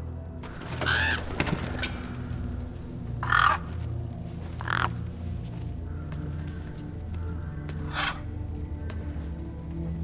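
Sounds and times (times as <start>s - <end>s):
low music drone: 0.0s - 10.0s
crow cawing: 0.7s - 1.5s, 3.1s - 3.8s, 4.6s - 9.2s.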